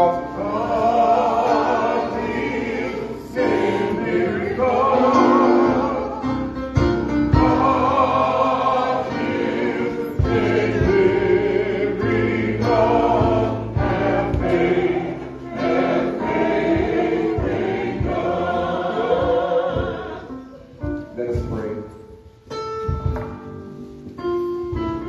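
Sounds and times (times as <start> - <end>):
choir singing gospel: 0.0 - 21.4
instrumental accompaniment: 0.0 - 25.0
percussive beats: 6.7 - 21.7, 22.6 - 23.6.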